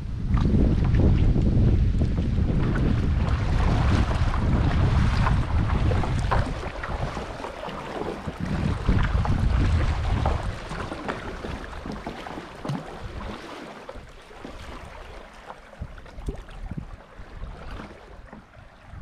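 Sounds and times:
water lapping and splashing: 0.0s - 19.0s
wind buffeting microphone: 0.0s - 19.0s.

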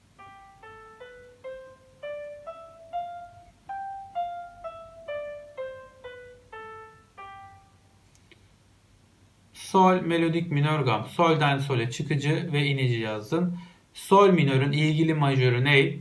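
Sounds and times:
single piano notes playing scale: 0.0s - 8.0s.

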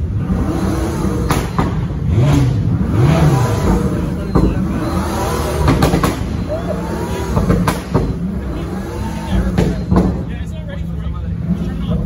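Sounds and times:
car engine idling: 0.0s - 12.0s
crowd chatter: 2.9s - 12.0s.

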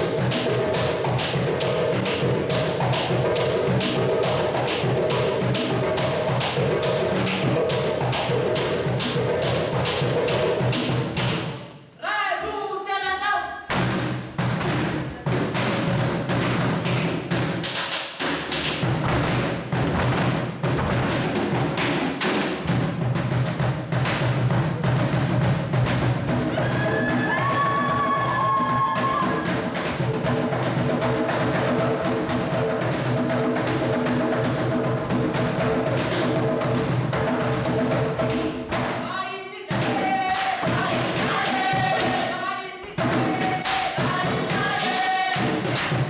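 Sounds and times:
hand drums playing fast rhythm: 0.0s - 11.6s, 13.7s - 46.0s
group of voices singing: 39.0s - 46.0s.

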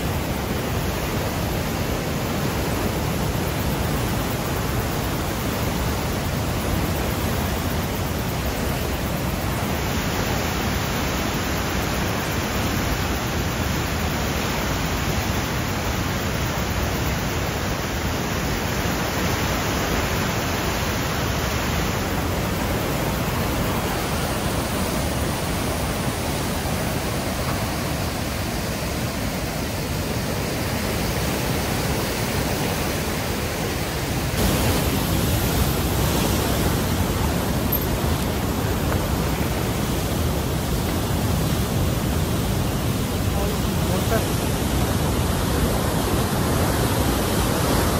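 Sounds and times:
river rushing through rock gorge: 0.0s - 47.9s.

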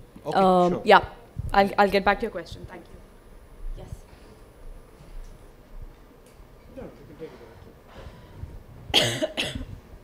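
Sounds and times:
woman coughing into microphone: 8.9s - 9.8s.

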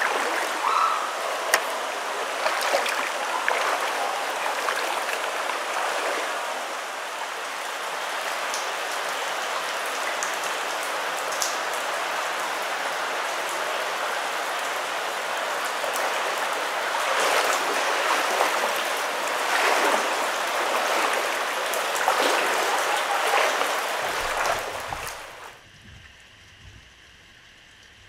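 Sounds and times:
water dripping onto creek: 0.0s - 25.5s
rushing stream: 0.0s - 25.6s.

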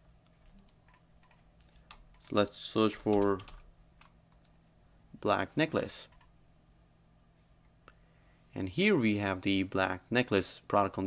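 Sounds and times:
computer keyboard clicks: 0.7s - 2.4s, 3.1s - 4.5s.

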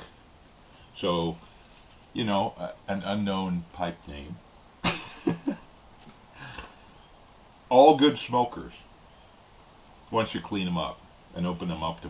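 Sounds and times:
faint soft rustle: 0.0s - 3.2s, 5.6s - 7.7s.

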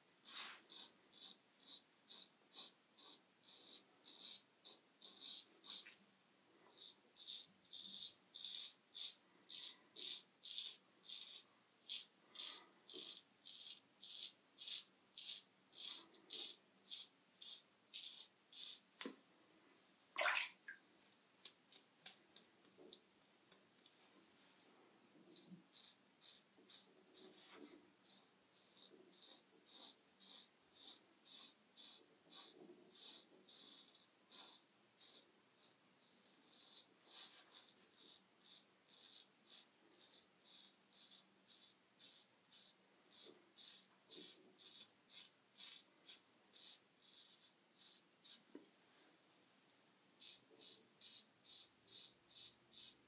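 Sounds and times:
razor scraping stubble: 0.2s - 6.0s, 6.7s - 19.1s, 25.4s - 48.4s, 50.2s - 53.0s.

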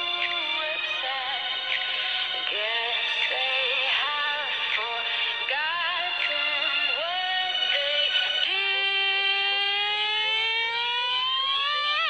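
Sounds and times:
song long held note: 8.4s - 12.0s.

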